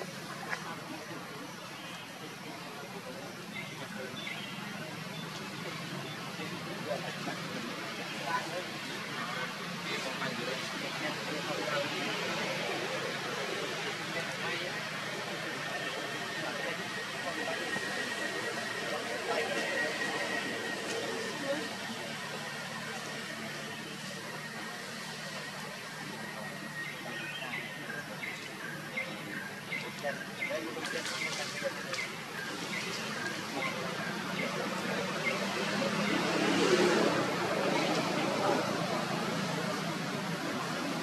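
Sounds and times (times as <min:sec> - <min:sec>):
distant voices: 0:00.0 - 0:41.0
steady wash of outdoor noise: 0:00.0 - 0:41.0.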